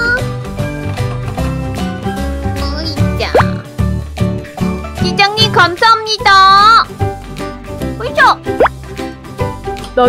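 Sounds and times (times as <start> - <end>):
light children's music: 0.0 - 10.0.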